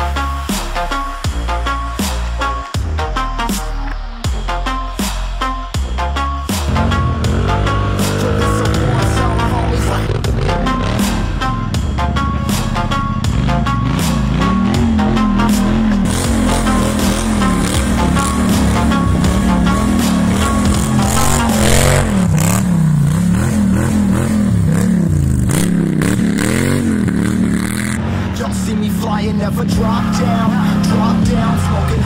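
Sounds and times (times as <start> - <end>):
music with steady beat: 0.0 - 32.0
quad bike engine revving: 6.5 - 32.0.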